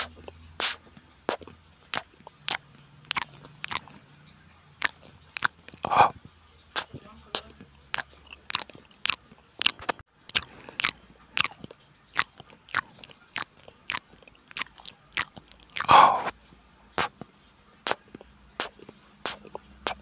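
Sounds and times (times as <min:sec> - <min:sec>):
wet mouth clicks and smacks: 0:00.0 - 0:04.0, 0:04.8 - 0:06.1, 0:06.8 - 0:16.4, 0:17.0 - 0:20.0
close-miked chewing: 0:00.0 - 0:20.0.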